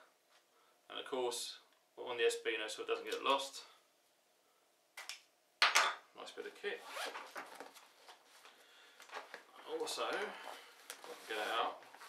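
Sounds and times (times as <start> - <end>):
nylon backpack rustling: 6.8 - 7.9.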